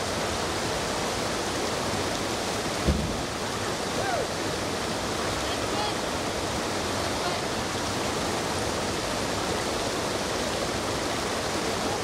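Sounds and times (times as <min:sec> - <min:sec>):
river water rushing over rocks: 0:00.0 - 0:12.0.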